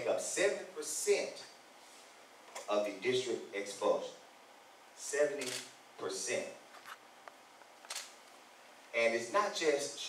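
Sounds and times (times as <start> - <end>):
camera shutter click: 5.4 - 5.7, 7.9 - 8.2.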